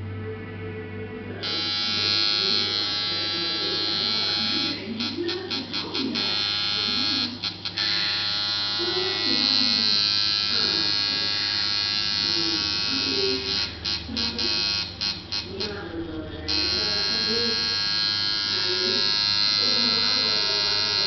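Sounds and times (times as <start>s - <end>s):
tattoo machine buzzing: 1.4s - 21.0s.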